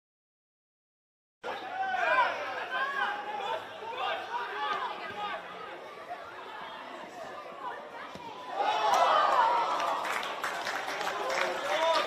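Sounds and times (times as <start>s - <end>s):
crowd chatter and shouts: 1.4s - 12.0s.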